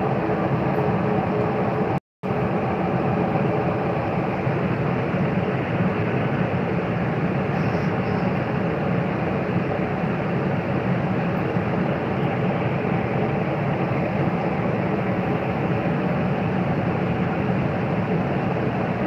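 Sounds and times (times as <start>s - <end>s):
steady rushing noise: 0.0s - 19.0s.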